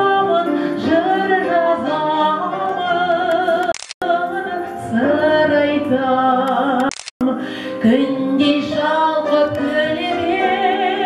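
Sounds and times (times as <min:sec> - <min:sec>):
grand piano accompaniment: 0:00.0 - 0:11.0
woman singing with vibrato: 0:00.0 - 0:11.0.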